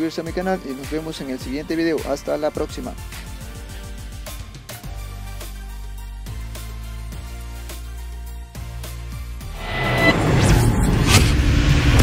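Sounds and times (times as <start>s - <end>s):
cinematic whoosh: 9.5s - 12.0s.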